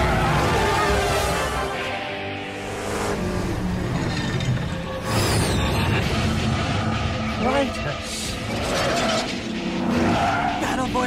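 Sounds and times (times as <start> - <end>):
tense orchestral music: 0.0 - 11.0.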